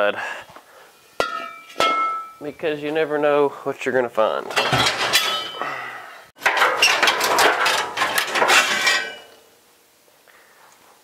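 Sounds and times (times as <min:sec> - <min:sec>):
metal parts clanking in truck bed: 0:01.2 - 0:02.4, 0:04.5 - 0:05.7, 0:06.4 - 0:09.4.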